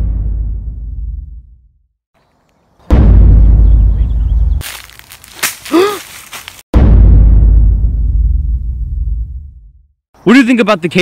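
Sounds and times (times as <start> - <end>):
deep booming impact hits: 0.0 - 1.6, 2.9 - 4.6, 6.7 - 9.8.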